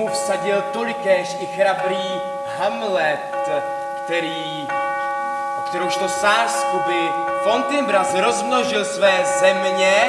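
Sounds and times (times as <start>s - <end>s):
higher ringing tones: 0.0s - 10.0s
sustained ringing tones: 0.0s - 10.0s.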